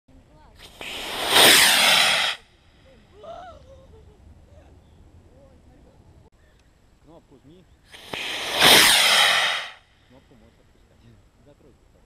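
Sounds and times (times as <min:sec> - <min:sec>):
model rocket motor roaring: 0:00.6 - 0:02.5, 0:08.0 - 0:09.8.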